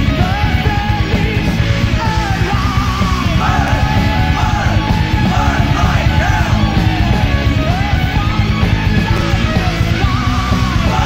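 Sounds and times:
distorted guitars: 0.0 - 11.0
fast drumming: 0.0 - 11.0.

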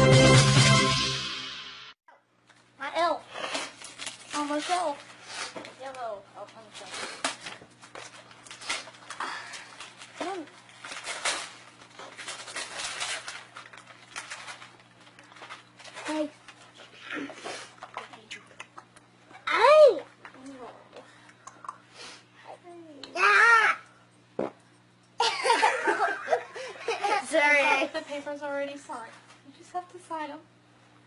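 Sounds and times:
paper rustling and tearing: 3.4 - 5.6, 6.8 - 16.7.

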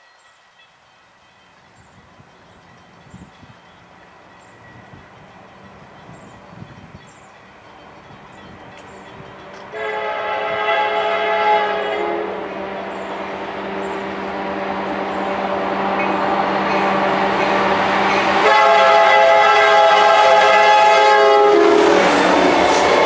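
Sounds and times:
diesel locomotive rumble: 1.6 - 23.0
train air horn blast: 9.6 - 14.9, 16.6 - 23.0.

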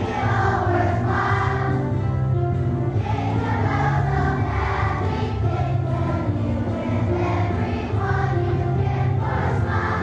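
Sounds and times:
children's choir singing: 0.0 - 2.2, 2.9 - 10.0
instrumental accompaniment with bass: 0.0 - 10.0.

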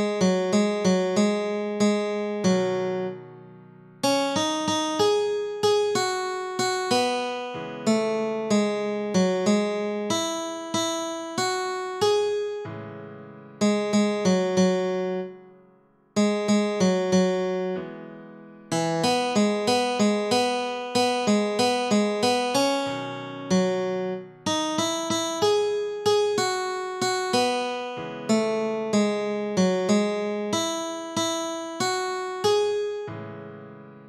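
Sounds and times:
slow plucked guitar melody: 0.0 - 12.6, 13.6 - 15.4, 16.2 - 18.1, 18.7 - 33.1.

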